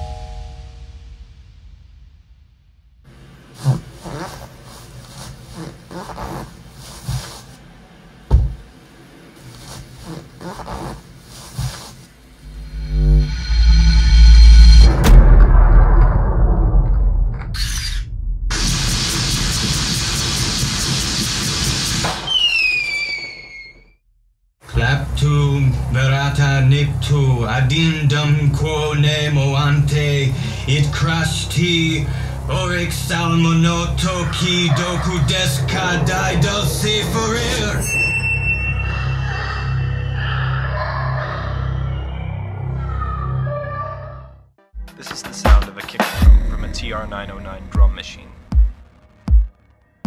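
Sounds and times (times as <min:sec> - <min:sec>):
chime: 0:00.0 - 0:01.0, 0:37.8 - 0:40.1
loud low rumble: 0:00.3 - 0:03.5, 0:12.3 - 0:20.3, 0:24.7 - 0:37.8, 0:46.2 - 0:49.3
electric fence zapping crackle: 0:17.6 - 0:22.9
falling whistling tones: 0:22.2 - 0:23.9.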